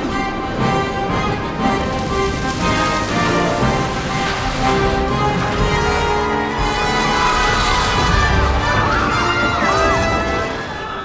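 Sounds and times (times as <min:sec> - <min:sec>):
symphony orchestra playing chords: 0:00.0 - 0:10.8.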